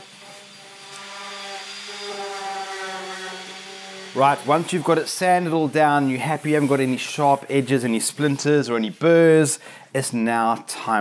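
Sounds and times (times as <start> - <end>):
orbital sander sanding wood: 0.0 - 9.6.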